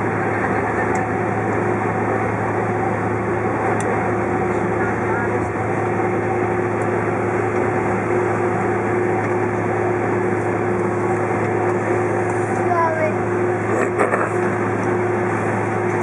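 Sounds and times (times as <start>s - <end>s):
airframe rumble: 0.0s - 16.0s
jet engines humming at low power: 0.0s - 16.0s.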